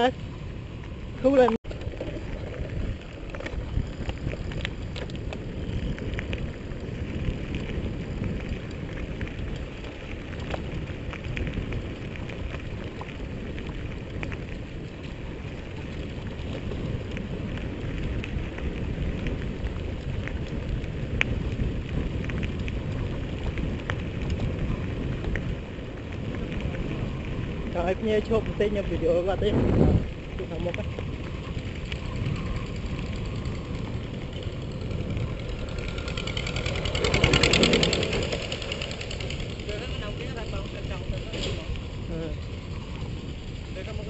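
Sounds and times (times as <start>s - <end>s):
bike tyres rolling on dirt: 0.0s - 44.0s
wind on microphone: 0.0s - 44.0s
small clicks and rattles: 30.4s - 44.0s.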